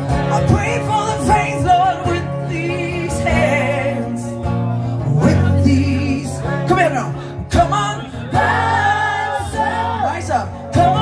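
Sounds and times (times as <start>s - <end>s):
acoustic guitar: 0.0s - 11.0s
person singing pop-rock: 0.0s - 11.0s.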